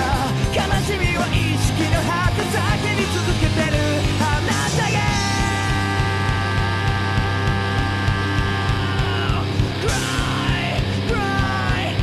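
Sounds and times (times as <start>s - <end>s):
fast drum beat: 0.0s - 12.0s.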